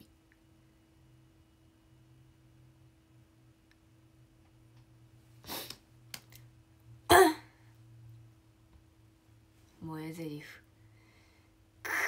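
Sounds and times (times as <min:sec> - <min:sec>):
woman clearing throat: 0:07.1 - 0:07.5.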